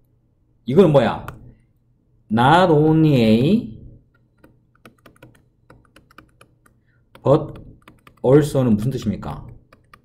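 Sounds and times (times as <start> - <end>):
stylus tapping on glass screen: 4.1 - 8.3.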